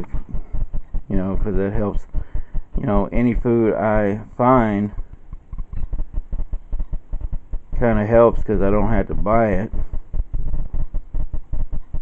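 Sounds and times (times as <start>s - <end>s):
camera handling rumble: 5.0s - 7.8s.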